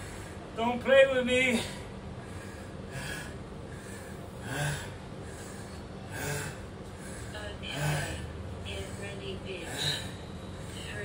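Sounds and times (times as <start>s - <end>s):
man breathing hard: 0.0s - 0.6s, 1.5s - 11.0s.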